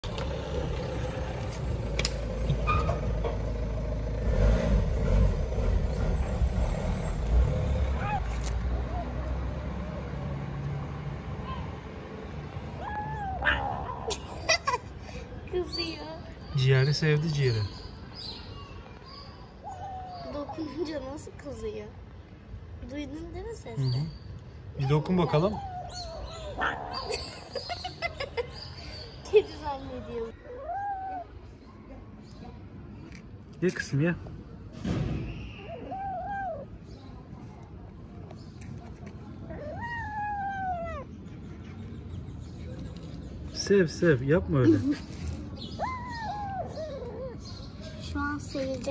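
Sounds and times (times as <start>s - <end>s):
low rumble of motor traffic: 0.0s - 48.9s.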